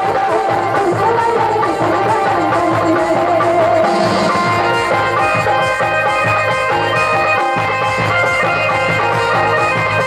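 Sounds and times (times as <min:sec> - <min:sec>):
electronic keyboard melody: 0:00.0 - 0:10.0
drum beat: 0:03.3 - 0:06.6.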